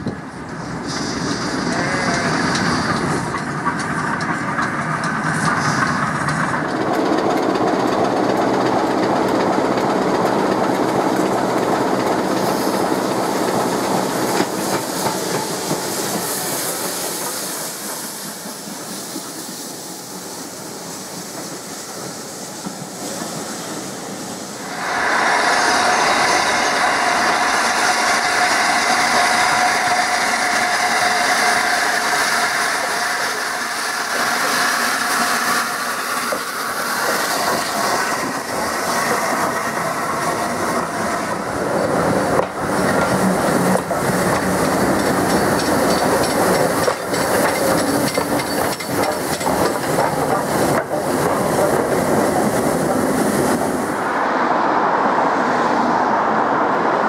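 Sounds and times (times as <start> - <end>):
train wheels clicking over rail joints: 0.0 - 53.8
steam train passing: 0.0 - 57.0
steam hissing from locomotive: 0.4 - 54.7.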